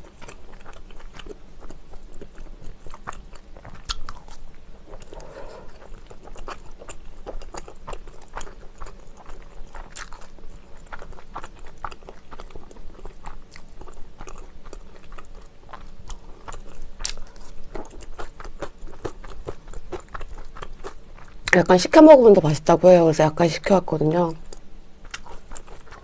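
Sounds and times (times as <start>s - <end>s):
person chewing and biting: 0.0s - 21.5s, 24.4s - 26.0s.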